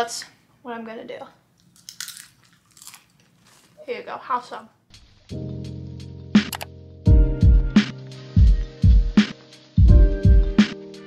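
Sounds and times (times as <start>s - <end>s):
popcorn crunching and chewing: 1.6s - 3.8s.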